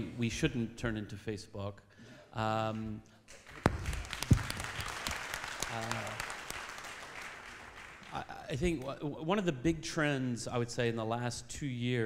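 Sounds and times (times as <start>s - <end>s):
audience applauding: 3.3s - 8.9s.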